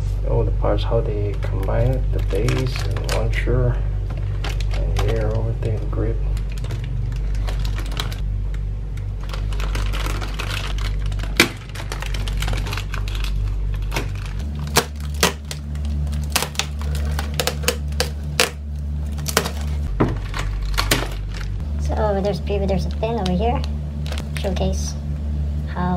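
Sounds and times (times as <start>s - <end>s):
steady low hum: 0.0s - 25.9s
plastic bags crinkling: 1.2s - 21.6s.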